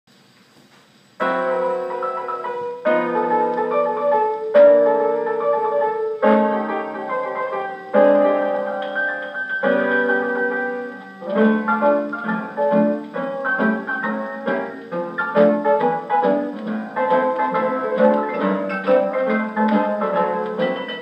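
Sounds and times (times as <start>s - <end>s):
record surface noise: 0.1s - 21.0s
piano duet: 1.1s - 21.0s.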